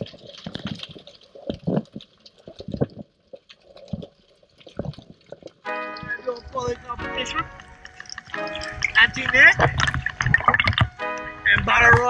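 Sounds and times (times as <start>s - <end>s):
sharp clicks and crackles: 0.0s - 6.8s, 7.6s - 12.0s
underwater gurgles and bubbling: 0.0s - 12.0s.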